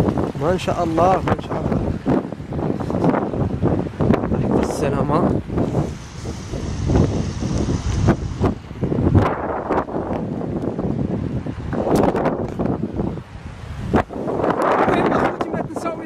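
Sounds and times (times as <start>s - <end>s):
wind gusting against microphone: 0.0s - 16.0s.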